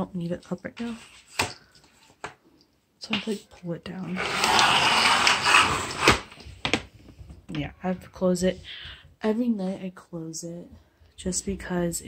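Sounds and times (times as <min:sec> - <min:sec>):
curtain scraping slide: 0:04.1 - 0:06.4.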